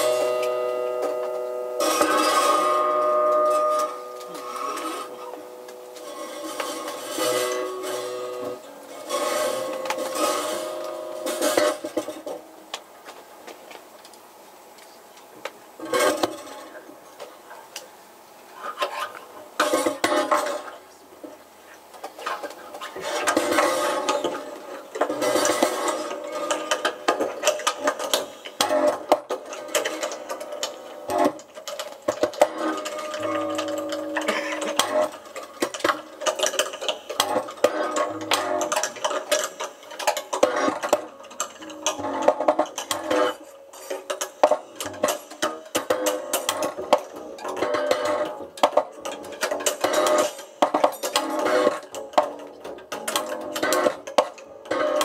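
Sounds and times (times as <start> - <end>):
clicking and clattering object noises: 21.9 - 55.0.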